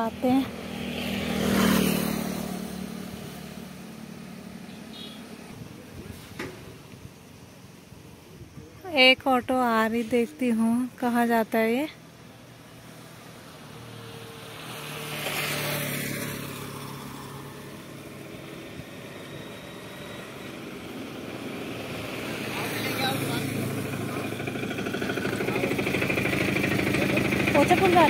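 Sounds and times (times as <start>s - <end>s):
vehicle passing: 0.0s - 6.8s, 10.0s - 28.0s
auto rickshaw engine: 0.0s - 28.0s.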